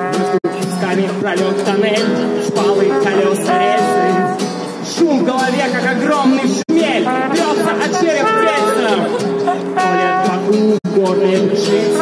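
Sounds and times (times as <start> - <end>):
trombone playing jazz: 0.0 - 4.8, 6.7 - 10.8
acoustic guitar playing: 0.0 - 12.0.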